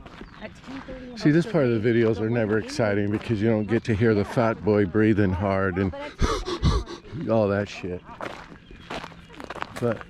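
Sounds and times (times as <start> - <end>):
footsteps crunching on gravel: 0.0 - 4.9, 7.4 - 10.0.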